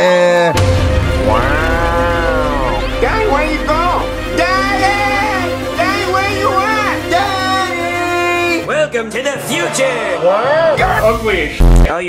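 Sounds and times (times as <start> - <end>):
background music drone: 0.5 - 9.0.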